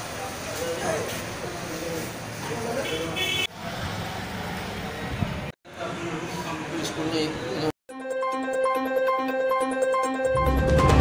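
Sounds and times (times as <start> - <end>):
traffic rumble: 0.0 - 7.7.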